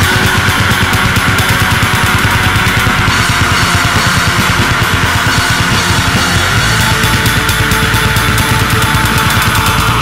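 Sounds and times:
heavy metal band playing: 0.0 - 10.0.

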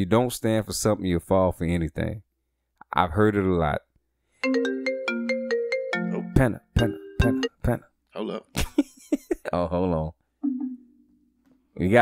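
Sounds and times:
phone ringtone melody: 4.4 - 7.7.

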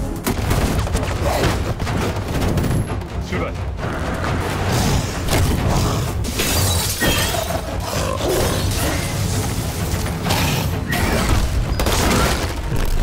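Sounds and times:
film music: 0.0 - 13.0.

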